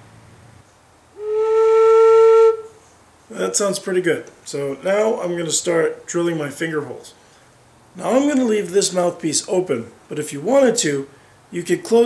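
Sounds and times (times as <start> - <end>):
flute held note: 1.2 - 2.8.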